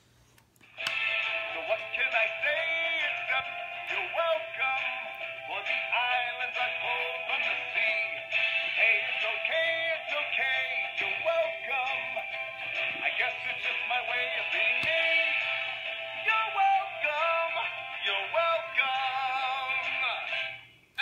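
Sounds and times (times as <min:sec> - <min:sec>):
tinny toy speaker singing: 0:01.2 - 0:21.0.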